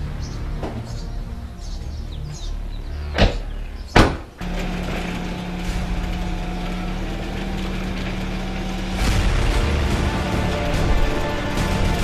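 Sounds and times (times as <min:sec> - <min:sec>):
car engine idling: 0:00.0 - 0:12.0
car doors shutting: 0:03.1 - 0:11.8.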